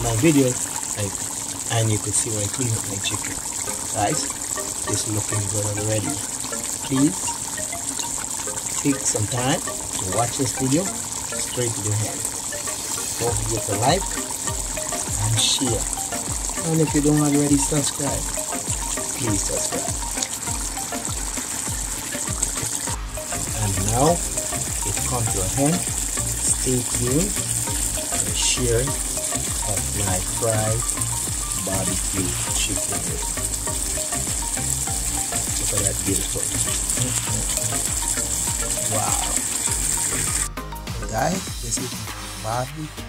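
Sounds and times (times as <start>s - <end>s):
background music with beat: 0.0s - 1.2s, 3.2s - 43.0s
sauce sizzling in a pot: 0.0s - 40.6s, 41.2s - 42.9s
thick bubbles popping: 2.7s - 40.6s.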